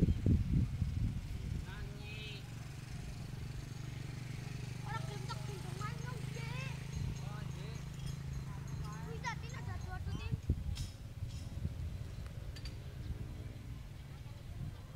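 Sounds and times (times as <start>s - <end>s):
voices: 1.6s - 14.9s.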